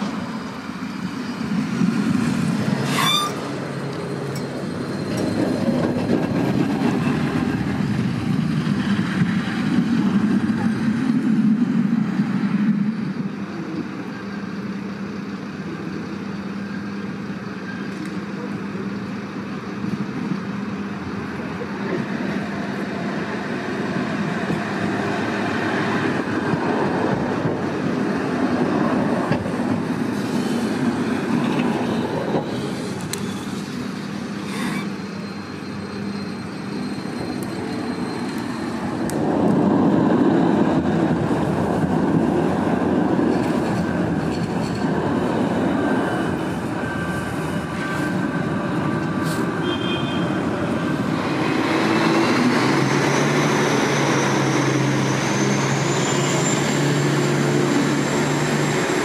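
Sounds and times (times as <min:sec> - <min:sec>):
trams running on rails: 0:00.0 - 0:59.0.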